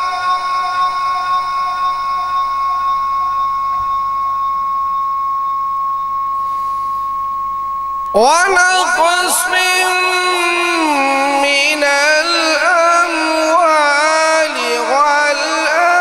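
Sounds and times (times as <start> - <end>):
steady high-pitched tone: 0.0 - 13.7.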